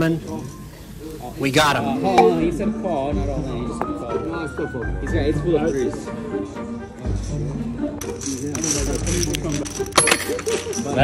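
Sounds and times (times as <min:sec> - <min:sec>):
background music: 0:00.0 - 0:11.0
poker chips clattering: 0:08.0 - 0:11.0.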